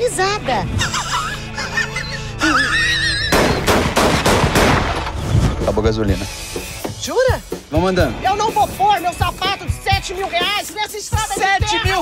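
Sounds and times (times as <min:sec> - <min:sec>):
man laughing: 0:00.8 - 0:03.4
gunshots: 0:03.3 - 0:05.3.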